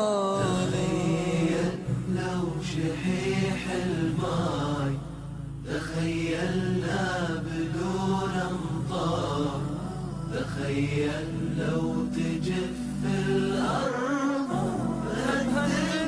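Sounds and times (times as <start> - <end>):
voices chanting melodically: 0.4 - 16.0.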